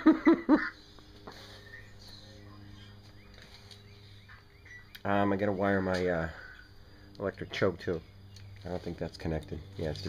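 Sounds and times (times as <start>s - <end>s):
man laughing: 0.0s - 0.9s
faint steady hum: 0.0s - 10.0s.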